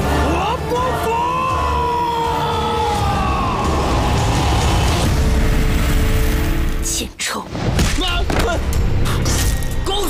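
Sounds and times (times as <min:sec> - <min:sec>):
film score music: 0:00.0 - 0:10.0
man screaming: 0:00.9 - 0:05.0.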